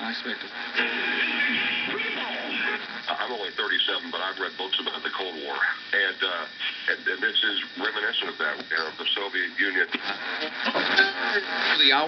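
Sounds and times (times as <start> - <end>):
radio speech snatches: 0.0 - 12.0
radio music snatches: 0.4 - 3.1, 6.5 - 12.0.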